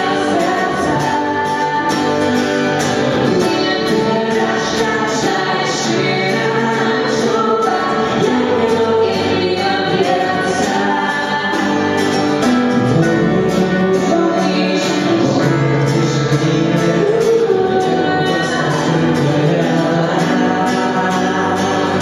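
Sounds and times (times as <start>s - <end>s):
acoustic guitar: 0.0s - 22.0s
man and woman singing: 0.0s - 22.0s
stage keyboard: 0.0s - 22.0s.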